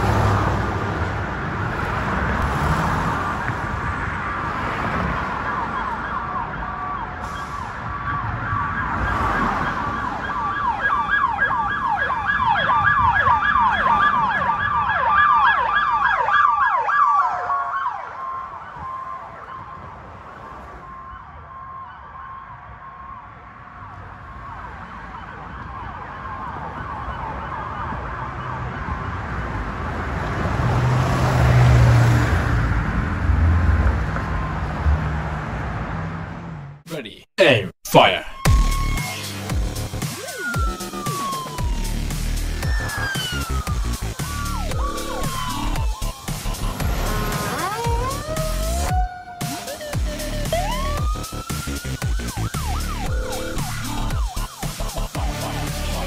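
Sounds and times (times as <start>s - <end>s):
road traffic noise: 0.0s - 56.0s
emergency siren wailing and yelping: 4.7s - 29.7s, 38.3s - 56.0s
heavy engine rumbling: 41.7s - 49.0s.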